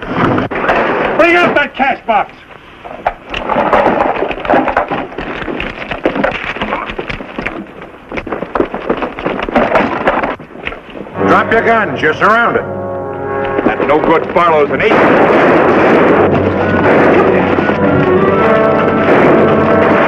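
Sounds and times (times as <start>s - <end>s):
loud rushing noise: 11.1s - 20.0s
knocks and bangs: 13.3s - 20.0s.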